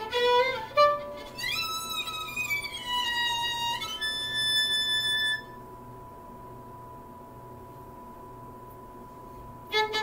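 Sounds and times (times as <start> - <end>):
violin bowing high notes: 0.0 - 5.6.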